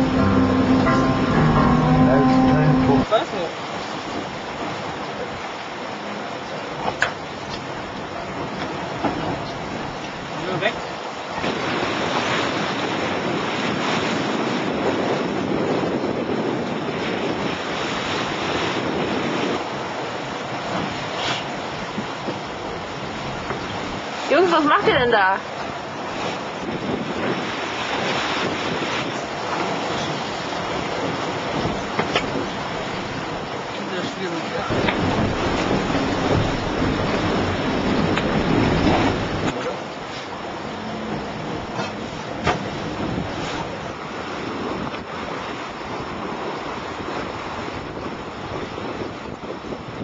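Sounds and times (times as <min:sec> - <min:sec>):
wind and sea water rushing: 0:00.0 - 0:50.0
wind buffeting microphone: 0:06.7 - 0:33.8, 0:34.5 - 0:50.0.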